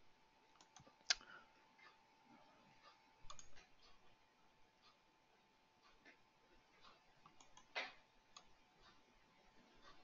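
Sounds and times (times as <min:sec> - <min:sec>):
computer mouse clicks: 0:00.5 - 0:01.3, 0:03.3 - 0:04.0, 0:06.9 - 0:09.0.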